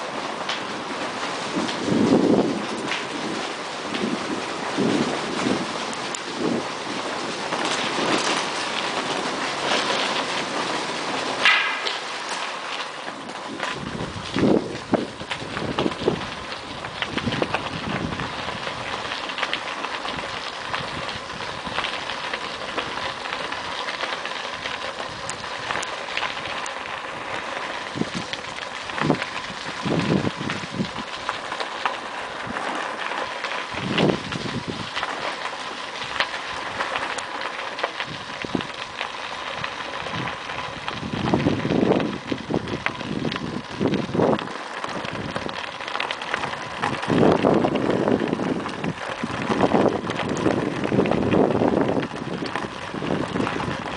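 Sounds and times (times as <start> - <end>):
bicycle tyres crunching on gravel: 0.0 - 53.9
low rumbles: 13.2 - 53.9.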